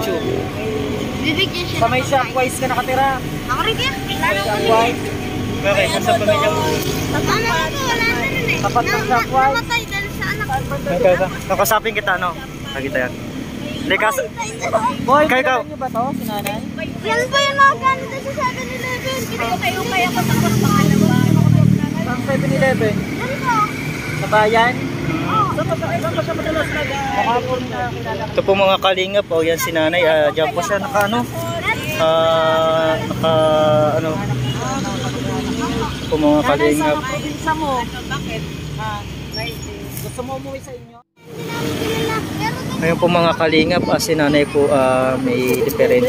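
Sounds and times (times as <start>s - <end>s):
people talking: 0.0s - 46.0s
road traffic rumble: 0.0s - 46.0s
vehicle engine humming: 0.0s - 46.0s.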